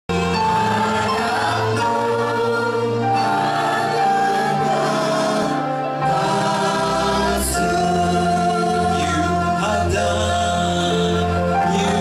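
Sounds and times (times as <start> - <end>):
voices singing along: 0.1 - 12.0
man singing gospel: 7.5 - 12.0.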